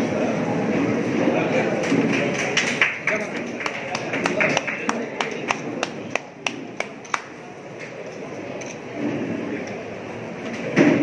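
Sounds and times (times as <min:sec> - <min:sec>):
low murmur of hall: 0:00.0 - 0:11.0
hand clapping: 0:02.1 - 0:07.4.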